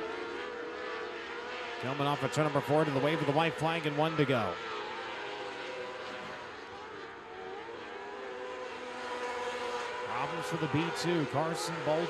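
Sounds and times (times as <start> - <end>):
sprint car engines at high revs: 0.0 - 12.0.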